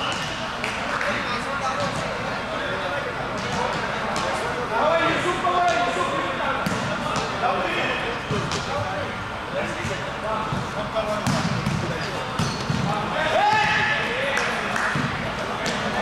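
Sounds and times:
players calling and chattering: 0.0 - 16.0
volleyball thumps: 6.6 - 7.4, 9.8 - 13.9.

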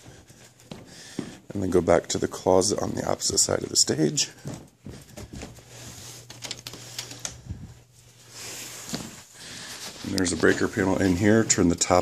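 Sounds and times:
footsteps on stage: 0.0 - 5.9
low steady hum: 0.1 - 12.0.

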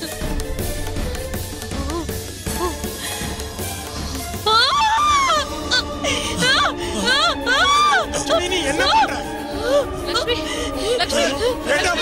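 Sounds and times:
background music score: 0.0 - 12.0
woman wailing: 1.7 - 2.9, 4.4 - 11.6.

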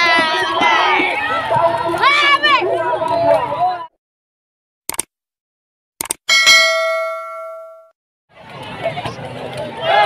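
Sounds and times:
crowd noise: 0.0 - 4.0, 8.3 - 10.0
bell-like notification ding: 6.3 - 7.9.

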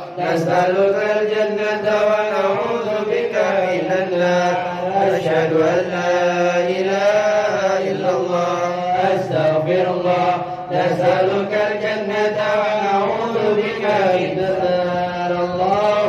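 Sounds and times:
slow melodic chanting: 0.0 - 16.0.

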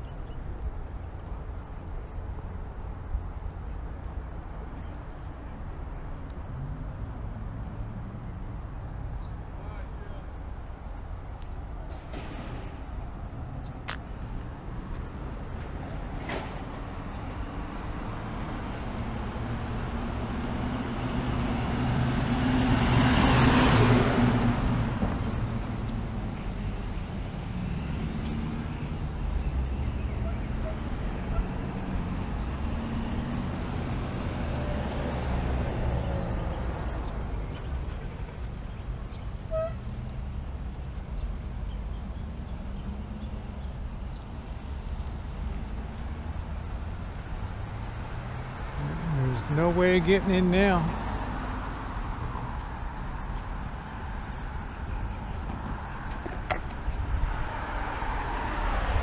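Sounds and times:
steady low traffic rumble: 0.0 - 59.0
vehicle passing: 12.1 - 26.4, 44.4 - 59.0.

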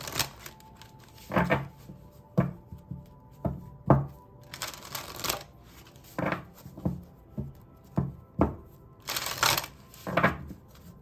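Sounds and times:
cards riffling: 0.0 - 1.5, 4.4 - 6.2, 9.0 - 10.9.

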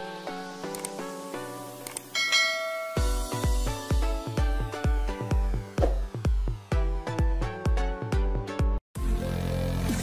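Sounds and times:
notification bell chime: 2.2 - 3.5.

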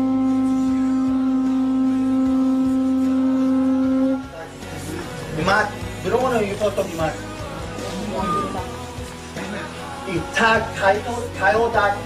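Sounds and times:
conch shell trumpet note: 0.0 - 4.4.

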